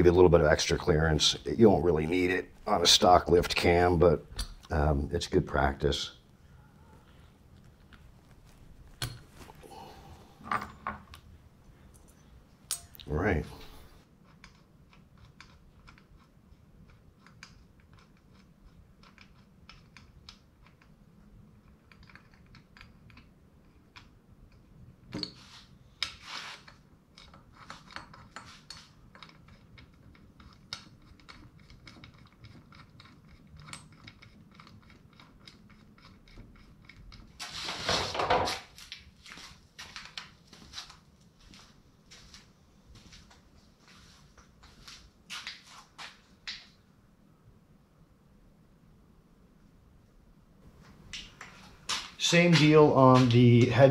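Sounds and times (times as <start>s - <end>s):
metal engine parts clicking: 21.6s - 23.3s.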